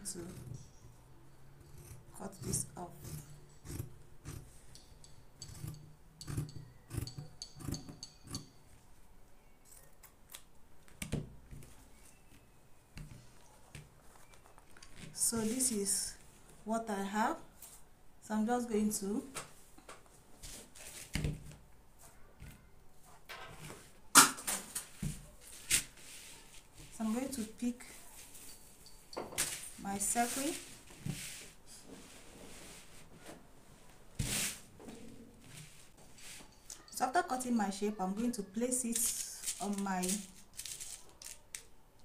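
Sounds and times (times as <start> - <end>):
paper and fabric rustling: 20.0 - 21.2, 24.6 - 28.8, 29.4 - 36.6, 38.8 - 41.6.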